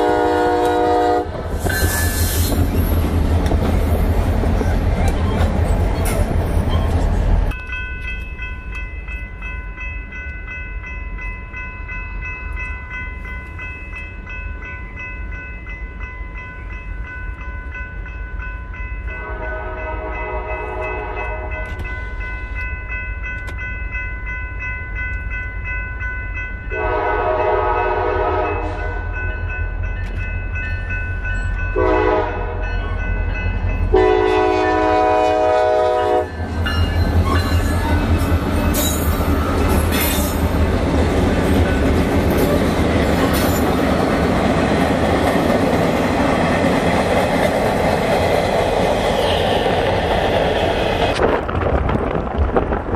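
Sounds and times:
locomotive horn blasts: 0:00.0 - 0:01.4, 0:19.2 - 0:21.8, 0:26.7 - 0:29.2, 0:31.8 - 0:32.6, 0:33.9 - 0:36.3
locomotive engine rumble: 0:00.0 - 0:07.6
crossing bell ringing: 0:00.0 - 0:51.2
train wheels clacking over rails: 0:36.5 - 0:52.9.

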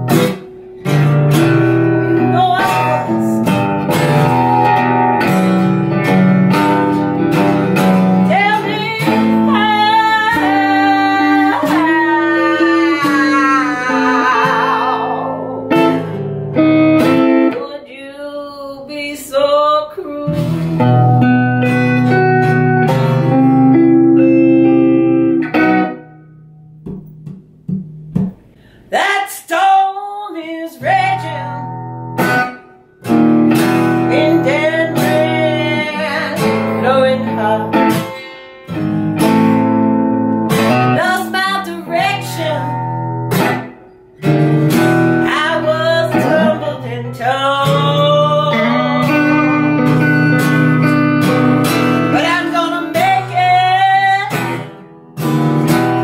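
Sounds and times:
electric guitar: 0:00.0 - 0:17.9, 0:19.4 - 0:28.9, 0:30.8 - 0:56.0
acoustic guitar: 0:00.0 - 0:56.0.

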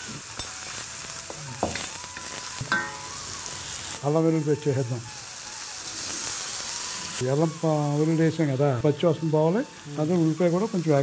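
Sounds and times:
onion frying in oil: 0:00.0 - 0:11.0.

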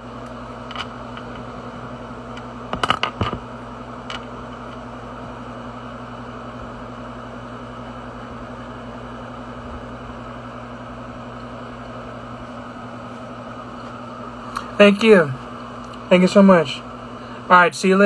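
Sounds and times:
room noise hum and hiss: 0:00.0 - 0:18.0.

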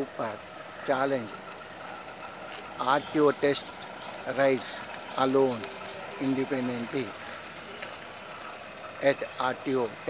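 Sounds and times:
car driving past: 0:00.0 - 0:10.0.

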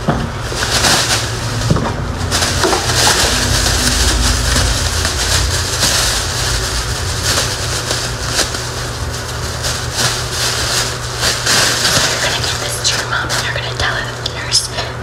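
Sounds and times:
crinkly material rustling: 0:00.0 - 0:14.9
low handling rumble: 0:00.0 - 0:15.0.

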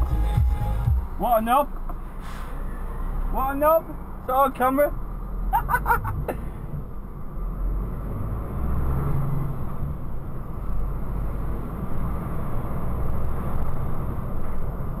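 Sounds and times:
truck engine and road noise: 0:00.0 - 0:15.0.

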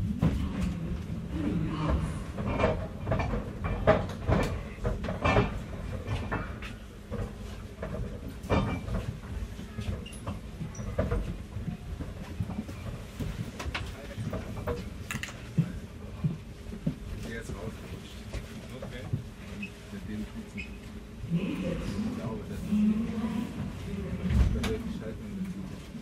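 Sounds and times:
train carriage rumble: 0:00.0 - 0:26.0.

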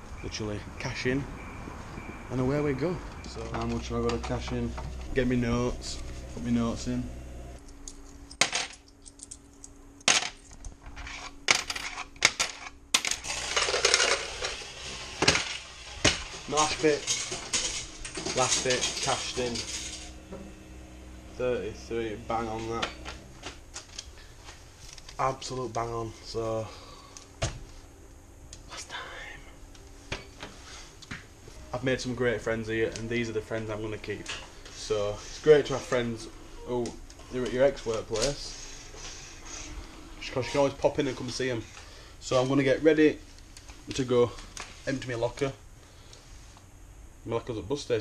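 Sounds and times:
coins clinking: 0:07.6 - 0:21.0
man whispering: 0:28.6 - 0:29.6.

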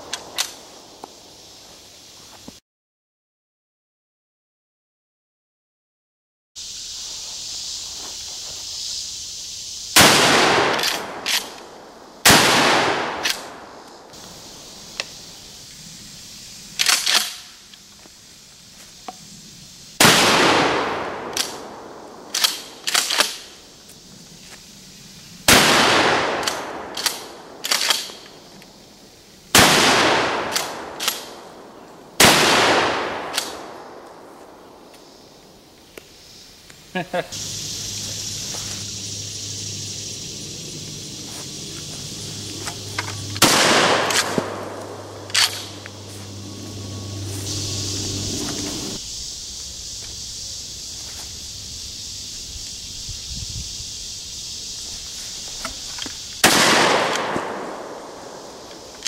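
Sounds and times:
shotgun blasts echoing: 0:10.0 - 0:11.6, 0:12.2 - 0:13.7, 0:20.0 - 0:22.3, 0:25.5 - 0:27.6, 0:29.6 - 0:31.4, 0:32.2 - 0:34.0, 0:42.8 - 0:47.6, 0:56.4 - 0:58.1
person laughing: 0:36.9 - 0:37.4.

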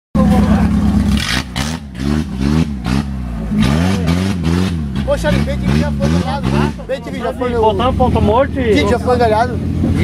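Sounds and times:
buggy engine revving: 0:00.2 - 0:10.0.

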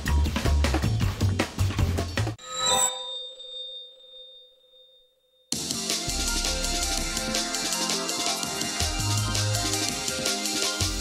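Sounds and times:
bell-like chime: 0:02.4 - 0:05.7
music beat: 0:05.6 - 0:11.0.

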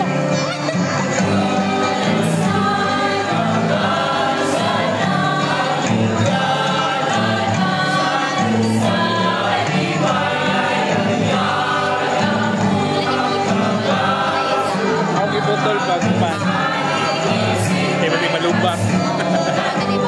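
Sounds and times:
choir singing a carol: 0:00.0 - 0:20.0.

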